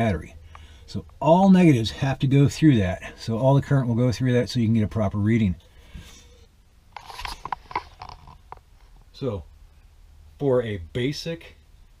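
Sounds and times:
camera handling clicks and rubbing: 6.9s - 8.6s.

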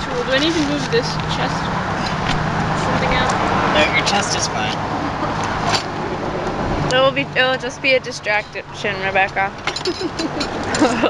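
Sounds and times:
motor vehicle rumble: 0.0s - 11.0s.

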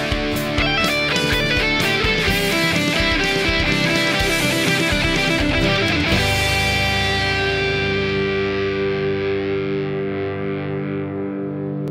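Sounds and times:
distorted electric guitar chord: 0.0s - 11.9s.

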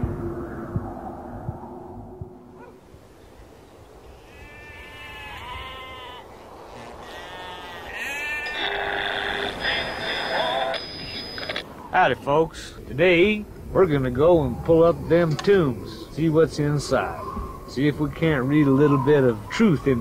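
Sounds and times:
livestock bleating: 4.2s - 10.7s.

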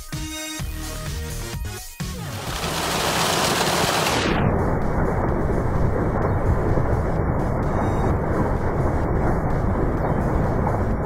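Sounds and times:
water gushing into pool: 2.2s - 4.4s.

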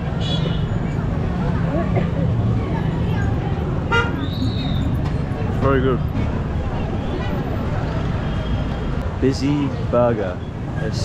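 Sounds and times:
street traffic rumbling: 0.0s - 11.0s
vehicle horn toot: 3.9s - 4.2s.

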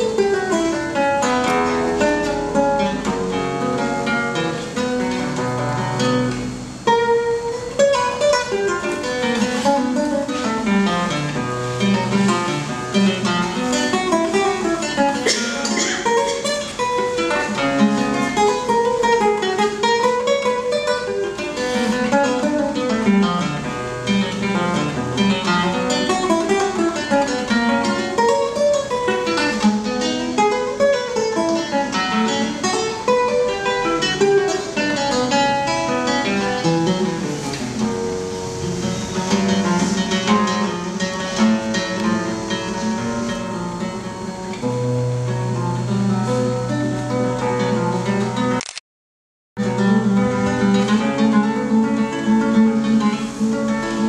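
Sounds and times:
solo acoustic guitar music: 0.0s - 48.6s, 49.6s - 54.0s.

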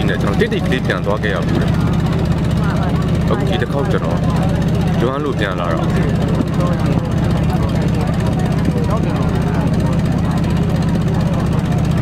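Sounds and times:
boat engine running: 0.0s - 12.0s
faint voices: 0.0s - 12.0s.

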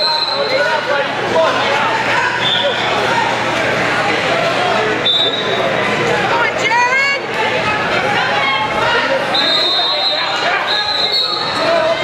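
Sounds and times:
spectators and coaches calling out: 0.0s - 12.0s.

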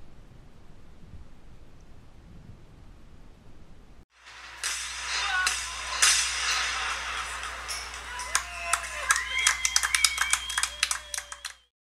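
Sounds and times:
fireworks crackling and popping: 4.2s - 11.7s
fireworks whistling: 4.2s - 11.7s.

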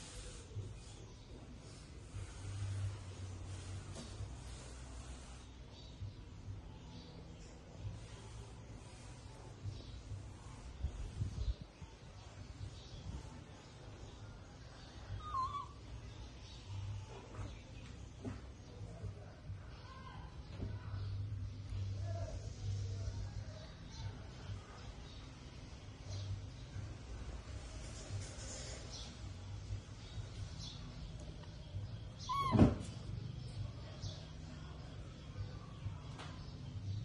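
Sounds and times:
monkey squeaky call: 15.2s - 15.8s, 32.2s - 32.8s.

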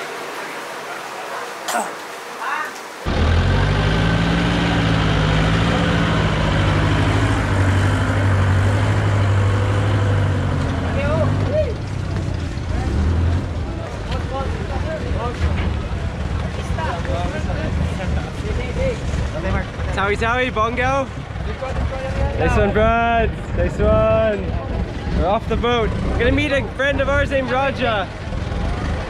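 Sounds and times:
people's voices: 0.8s - 2.9s
forklift engine running: 3.0s - 29.0s.

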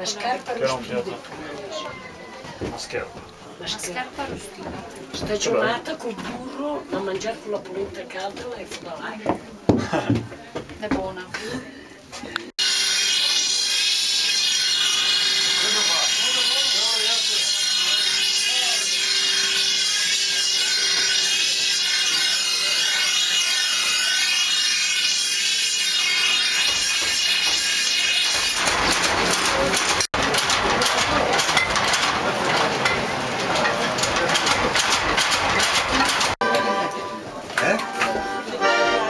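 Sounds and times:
grinding wheel grinding metal: 12.6s - 36.7s.

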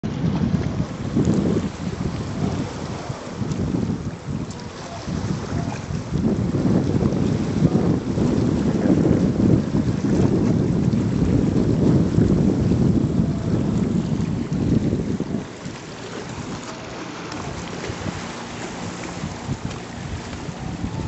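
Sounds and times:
water moving around rocks: 0.0s - 21.0s
wind buffeting microphone: 0.0s - 21.0s.

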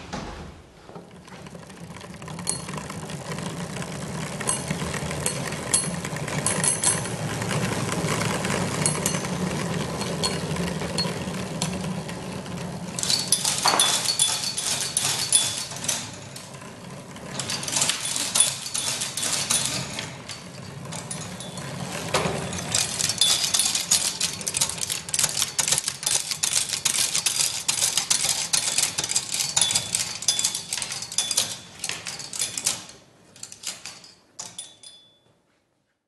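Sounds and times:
high metallic ringing: 13.0s - 16.2s, 34.0s - 35.4s
rapid metallic clicking: 22.5s - 34.6s.

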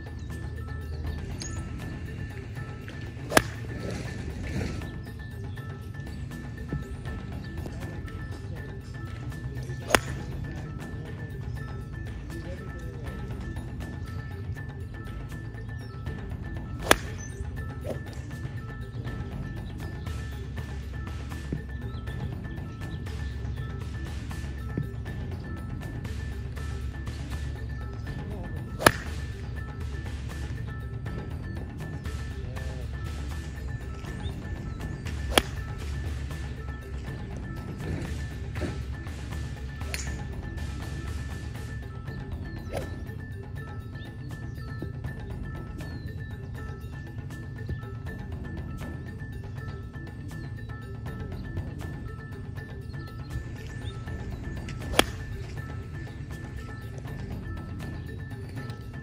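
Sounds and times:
background music: 0.0s - 59.0s
golf club striking ball: 2.6s - 5.2s, 9.6s - 10.8s, 16.7s - 18.4s, 28.7s - 29.6s, 34.9s - 37.1s, 39.8s - 40.2s, 53.6s - 57.2s.

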